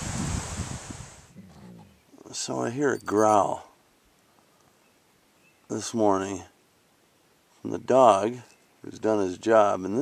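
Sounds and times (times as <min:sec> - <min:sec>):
wind buffeting microphone: 0:00.0 - 0:02.0
wind hissing through trees: 0:00.0 - 0:10.0.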